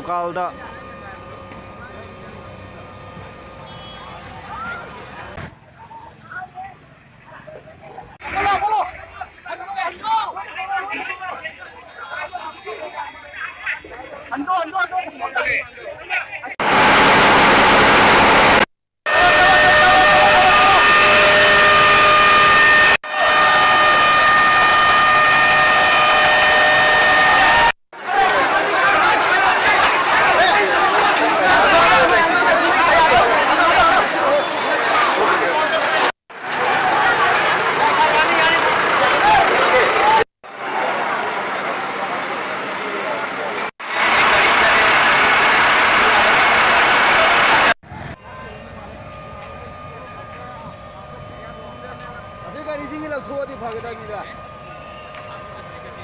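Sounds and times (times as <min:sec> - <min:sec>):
fire engine motor running: 0:00.0 - 0:08.2, 0:16.6 - 0:56.0
crowd voices: 0:00.0 - 0:17.0, 0:18.5 - 0:56.0
houses burning: 0:16.6 - 0:56.0
high whistling tones: 0:48.2 - 0:56.0.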